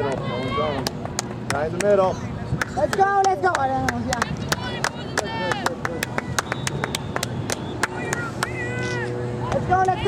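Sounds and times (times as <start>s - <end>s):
distant shouted calls: 4.5s - 9.6s
steady low hum: 5.8s - 10.0s
spectator shouting: 7.9s - 9.6s.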